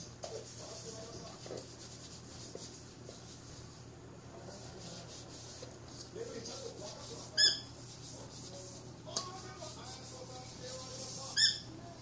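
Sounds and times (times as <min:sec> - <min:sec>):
faint rubbing noise: 0:00.2 - 0:11.6.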